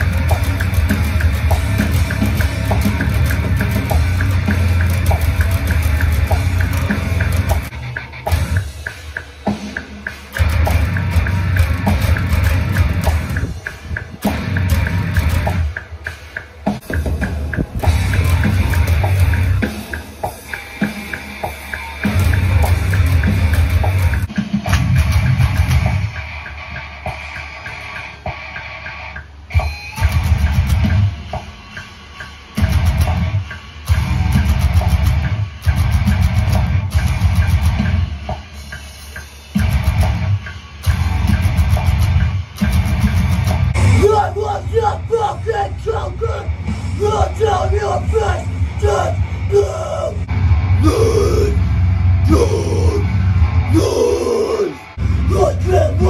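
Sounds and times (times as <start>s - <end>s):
electric bass rock riff: 0.0s - 31.8s, 32.6s - 38.9s, 39.5s - 56.0s
drums: 0.0s - 56.0s.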